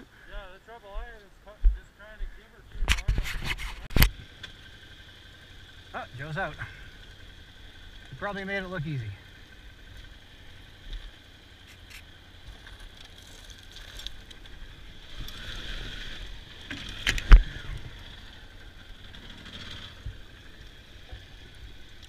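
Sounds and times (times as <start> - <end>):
motorcycle engine rumbling: 0.0 - 22.0.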